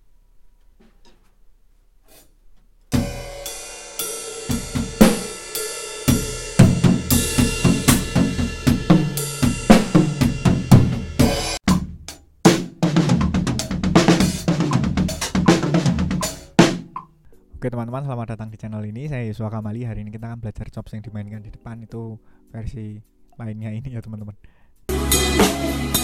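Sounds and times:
drum kit played with sticks: 2.9s - 17.2s, 24.9s - 26.0s.

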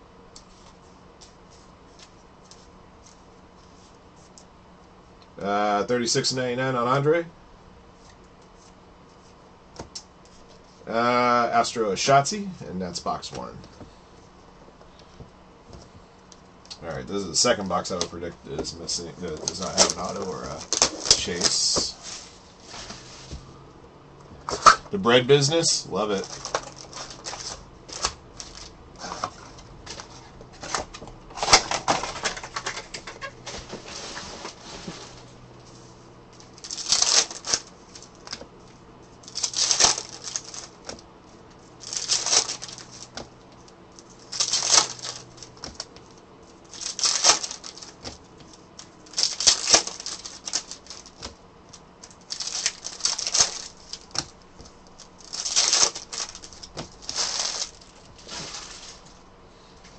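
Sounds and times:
foil wrappers tearing: 19.2s - 21.8s, 36.6s - 38.4s, 39.3s - 41.0s, 41.8s - 43.1s, 44.2s - 45.8s, 46.6s - 48.2s, 49.0s - 51.3s, 52.1s - 54.3s, 54.9s - 59.1s
packs rustling: 26.0s - 35.3s, 39.3s - 41.0s, 41.8s - 43.2s, 44.0s - 45.9s, 46.6s - 59.2s.

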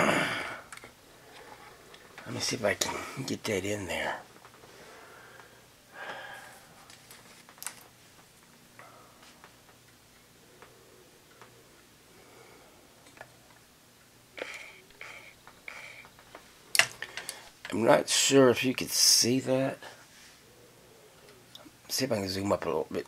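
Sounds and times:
low steady hum: 0.0s - 23.0s
person speaking: 2.2s - 4.4s.

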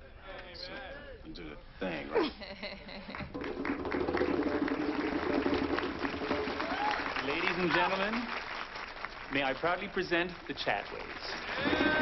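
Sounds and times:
crowd clapping: 3.1s - 12.0s.

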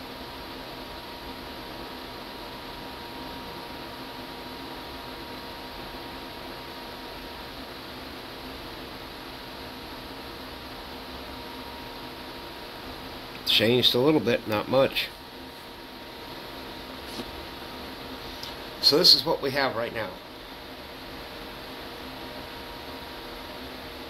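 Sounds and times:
steady background hiss: 0.0s - 24.0s.

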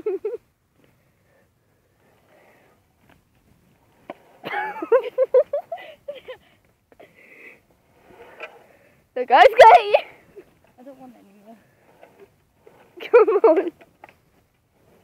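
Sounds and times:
breathy laughter: 4.4s - 6.5s.

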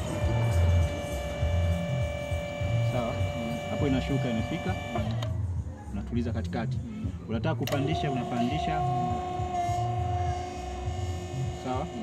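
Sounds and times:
hydraulic pump whining: 0.0s - 12.0s
low pulsing throb: 0.0s - 12.0s.

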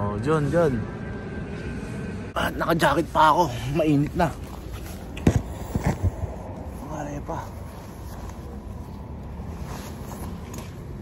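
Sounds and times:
fabric rustling: 4.2s - 10.8s.

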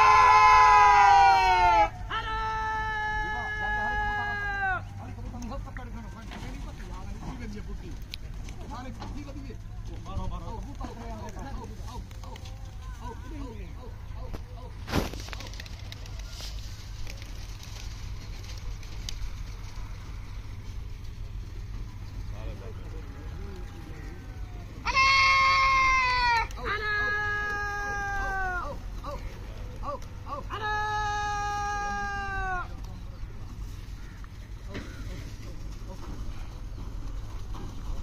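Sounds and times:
man shouting calls to pigeons: 0.0s - 6.0s, 10.2s - 14.8s, 22.4s - 33.1s.

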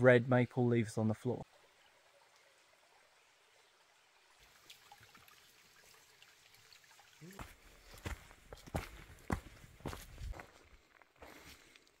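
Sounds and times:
footsteps on dirt trail: 7.4s - 11.9s.

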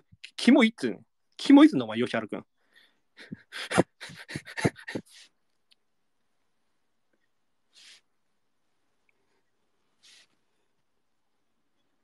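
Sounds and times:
man laughing breathily: 3.2s - 5.3s.

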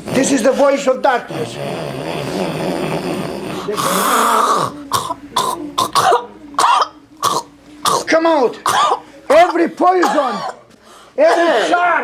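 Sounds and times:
woman groaning and rasping: 1.2s - 5.9s
woman coughing: 4.5s - 11.8s.

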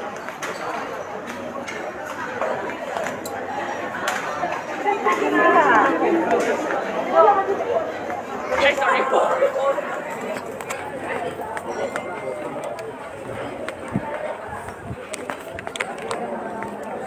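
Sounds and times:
indistinct chatter of voices: 0.0s - 17.0s.

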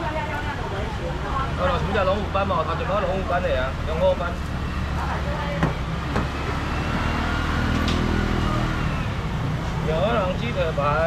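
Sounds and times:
market noise: 0.0s - 11.0s.

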